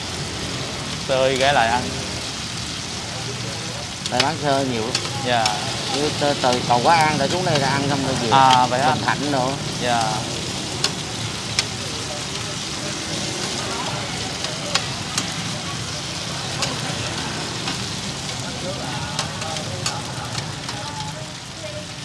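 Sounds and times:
cake cubes sizzling in oil: 0.0s - 22.0s.

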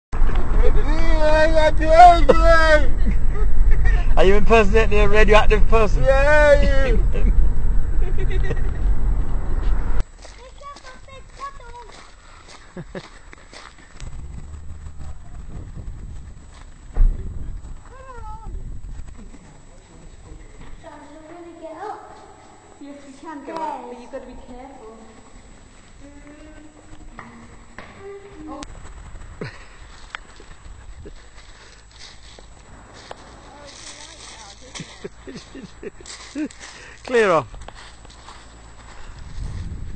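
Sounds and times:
car engine and road rumble: 0.1s - 10.2s, 13.8s - 20.5s, 24.6s - 39.9s
footsteps crunching on shingle: 10.0s - 39.9s.

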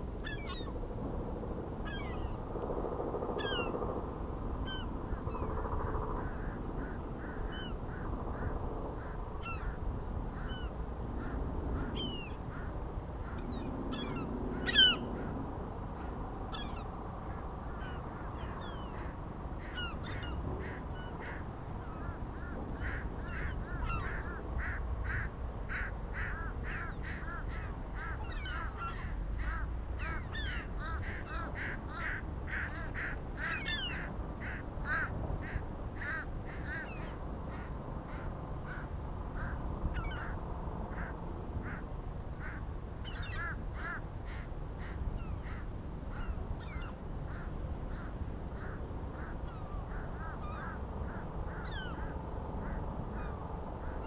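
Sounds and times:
gulls calling: 0.0s - 0.8s, 1.8s - 2.4s, 3.4s - 3.9s, 4.6s - 54.0s
wind rumble on microphone: 0.0s - 54.0s.

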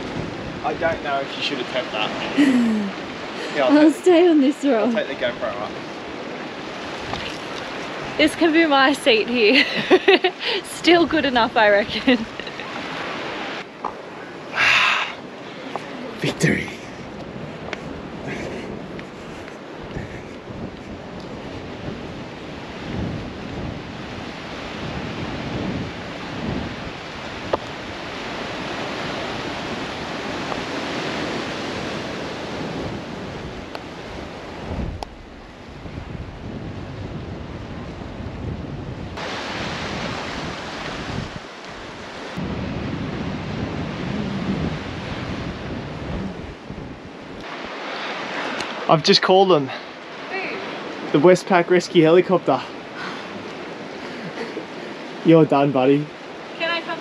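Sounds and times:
wind on microphone: 0.0s - 49.0s
waves against rocky shore: 0.0s - 57.0s.

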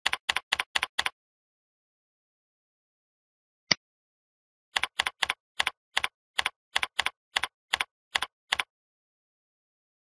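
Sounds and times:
computer keyboard keystrokes: 0.0s - 1.1s, 4.8s - 8.7s.

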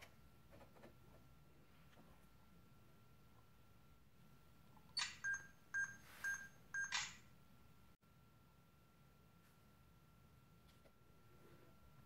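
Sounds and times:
short electronic beeps: 5.2s - 7.1s.

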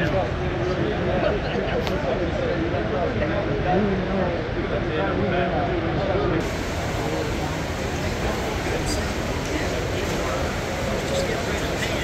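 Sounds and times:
crowd background noise: 0.0s - 12.0s
people talking: 0.0s - 12.0s.

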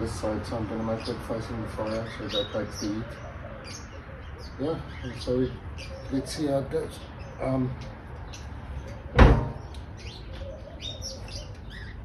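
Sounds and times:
small birds chirping: 0.0s - 12.0s
steel lid banging shut: 9.2s - 9.6s.

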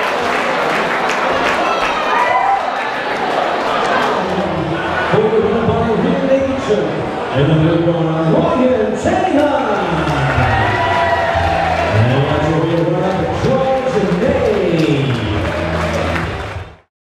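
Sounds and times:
crowd cheering and shouting: 0.0s - 16.9s
music: 10.2s - 16.9s.

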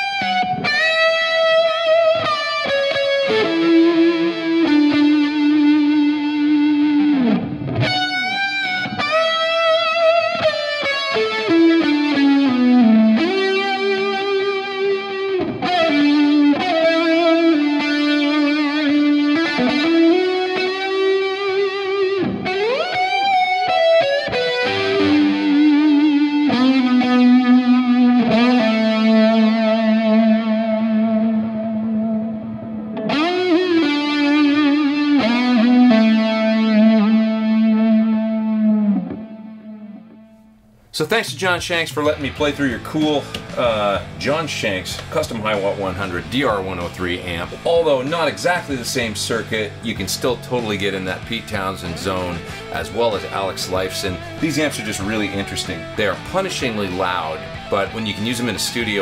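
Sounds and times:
fuzzy electric guitar lead: 0.0s - 59.0s.

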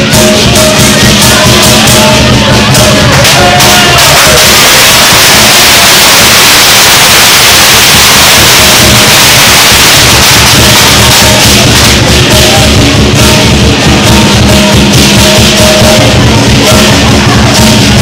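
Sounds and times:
cymbal crashes: 0.0s - 18.0s
drum beat: 0.0s - 18.0s.

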